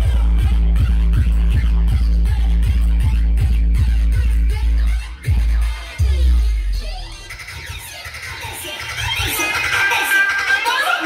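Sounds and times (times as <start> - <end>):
deep bass boom: 0.0 - 7.3
bass-heavy dance music: 0.0 - 11.0.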